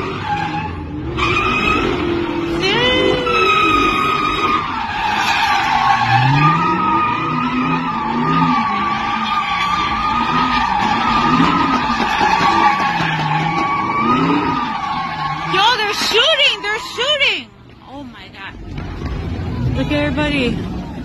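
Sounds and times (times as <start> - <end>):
tyres squealing: 0.0 - 19.8
car engine revving: 0.0 - 21.0.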